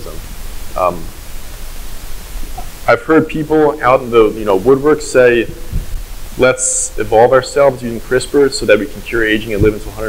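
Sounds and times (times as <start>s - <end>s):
man speaking: 0.0s - 0.2s, 0.8s - 1.2s, 2.6s - 5.8s, 6.4s - 10.0s
low hum: 0.0s - 10.0s
steady hiss: 0.0s - 10.0s.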